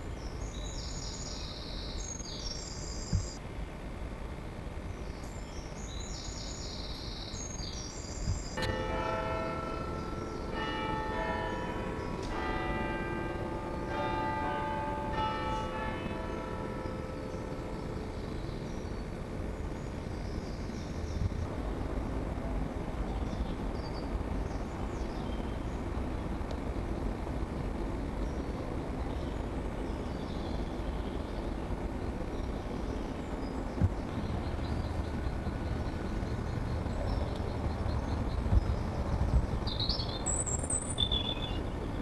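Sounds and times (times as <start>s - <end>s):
low background noise: 0.0s - 42.0s
bells ringing: 8.6s - 18.7s.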